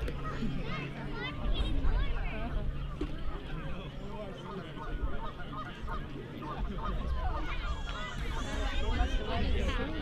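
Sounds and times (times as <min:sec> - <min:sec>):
crowd chatter: 0:00.0 - 0:10.0
geese honking: 0:04.4 - 0:09.8.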